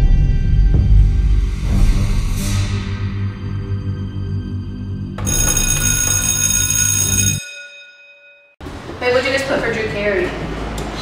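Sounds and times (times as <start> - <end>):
electric school bell ringing: 5.2 - 8.6.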